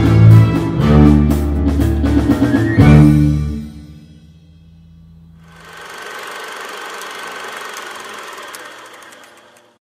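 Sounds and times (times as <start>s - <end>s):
mechanical rattling: 5.5s - 9.8s.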